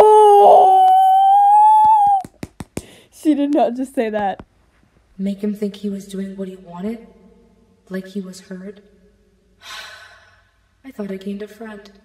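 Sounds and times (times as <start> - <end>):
person's high-pitched shocked cry: 0.0 - 2.3.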